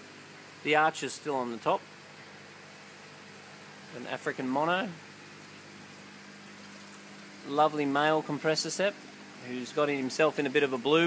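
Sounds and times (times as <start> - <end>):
aquarium equipment hum: 0.0 - 11.0
faint hiss of moving water: 0.0 - 11.0.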